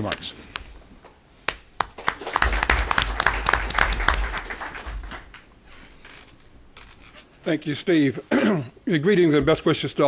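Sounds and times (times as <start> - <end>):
audience applauding: 1.8 - 5.5.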